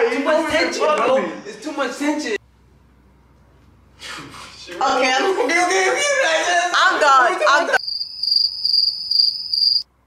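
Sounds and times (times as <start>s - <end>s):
crickets chirping: 7.8s - 9.9s.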